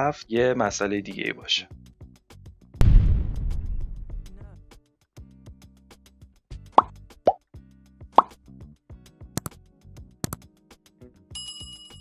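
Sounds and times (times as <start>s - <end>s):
faint background music: 0.0s - 2.3s, 4.2s - 5.9s
ringing bell chime: 11.4s - 12.0s.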